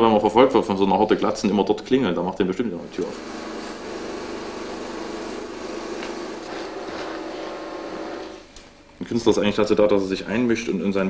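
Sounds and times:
mechanical hum with low tone: 0.0s - 11.0s.

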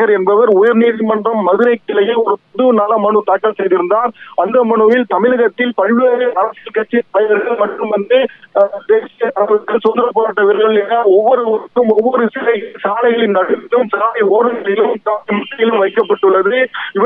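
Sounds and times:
man speaking over telephone: 0.0s - 17.0s.

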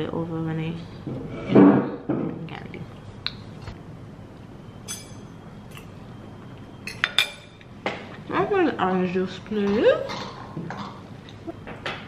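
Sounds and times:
cutlery clinking against dishes: 4.9s - 5.9s, 6.9s - 7.6s.

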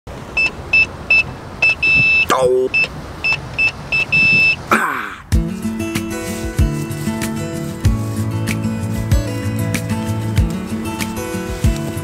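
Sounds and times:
electronic keypad lock beeping: 0.4s - 4.6s.

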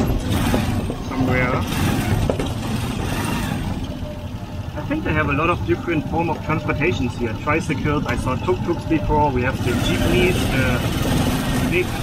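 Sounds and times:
motorcycle engine rumbling: 0.0s - 12.0s.

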